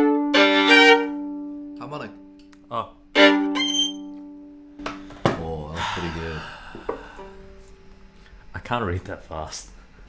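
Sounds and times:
violin chord ringing: 0.0 - 5.1.

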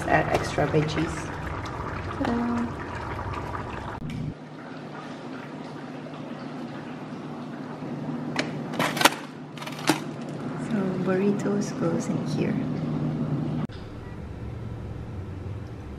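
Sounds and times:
steady background hum: 0.0 - 15.9.

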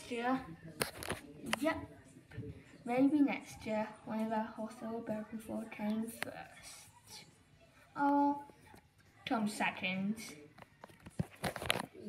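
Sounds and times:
plush toys rustling and crinkling: 0.6 - 1.8, 10.3 - 12.0.

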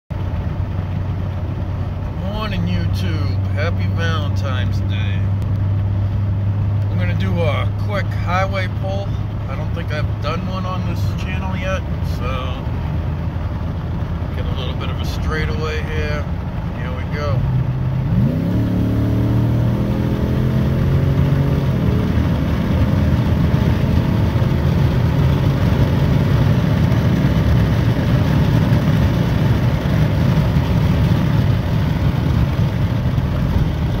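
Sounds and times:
truck engine at full throttle: 0.1 - 34.0
wind and road noise: 0.1 - 34.0.

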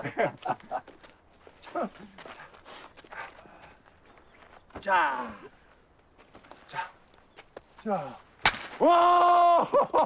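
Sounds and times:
footsteps scuffing on dirt: 0.2 - 8.3.

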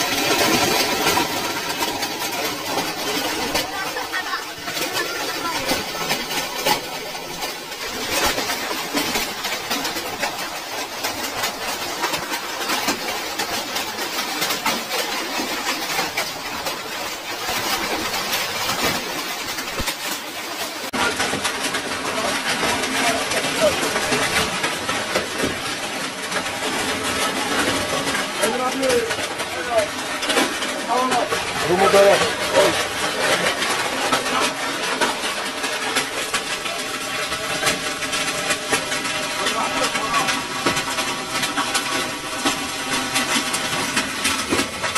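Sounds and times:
heavy hail pelting down: 0.0 - 44.9.

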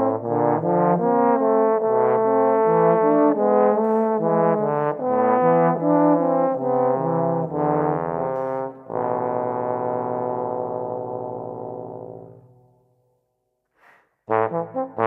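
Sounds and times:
bass trombones playing: 0.0 - 12.6, 14.3 - 15.0.

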